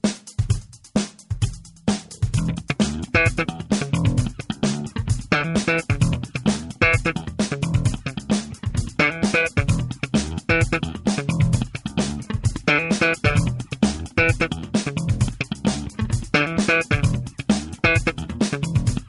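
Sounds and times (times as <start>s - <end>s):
electric bass funk groove: 1.4s - 19.0s.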